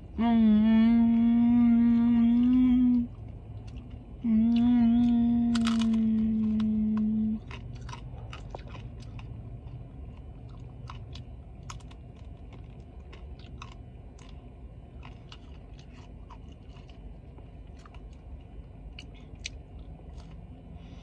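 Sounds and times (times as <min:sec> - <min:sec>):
person humming mmm of enjoyment: 0:00.2 - 0:03.1, 0:04.2 - 0:07.4
chewing crunchy taco shell: 0:01.2 - 0:20.8.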